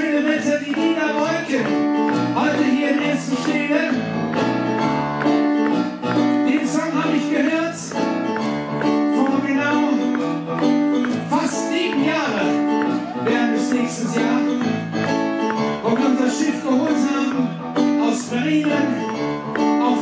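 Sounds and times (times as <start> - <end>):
man singing into a microphone: 0.0 - 4.3, 6.3 - 8.1, 9.0 - 15.0, 15.8 - 20.0
electric stage piano: 0.0 - 20.0.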